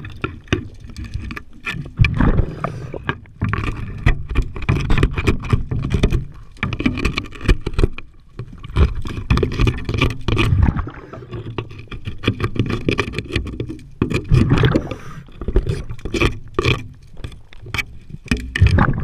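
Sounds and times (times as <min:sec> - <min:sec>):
underwater bubbling and rumbling: 0:00.0 - 0:19.0
knocks and scrapes on boat hull: 0:03.0 - 0:19.0.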